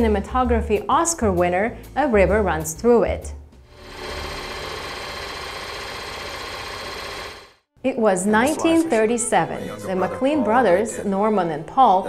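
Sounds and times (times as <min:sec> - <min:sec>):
film projector clatter and whir: 0:03.8 - 0:07.6.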